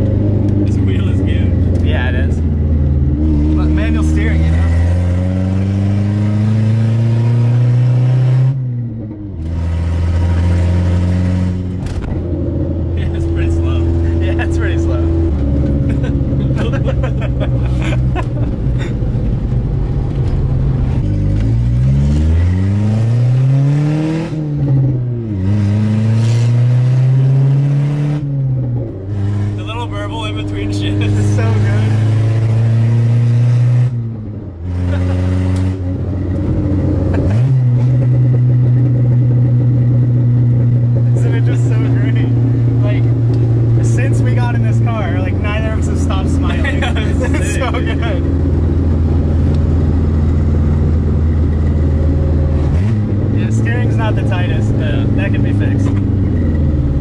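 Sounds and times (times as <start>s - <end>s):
car engine revving through gears: 0.0s - 57.0s.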